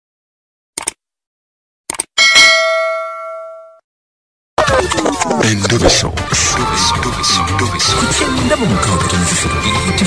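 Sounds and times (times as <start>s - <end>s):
bell ding: 2.2s - 3.8s
music: 4.6s - 10.0s.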